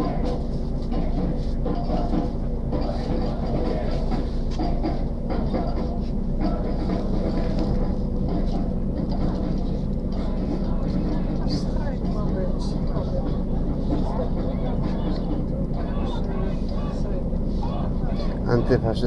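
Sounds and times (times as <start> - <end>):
vehicle engine hum: 0.0 - 19.0
voices murmuring: 0.0 - 19.0.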